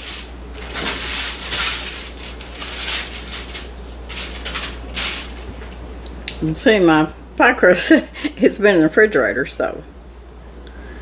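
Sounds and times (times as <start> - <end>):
wrapping crinkling and rustling: 0.0 - 5.8.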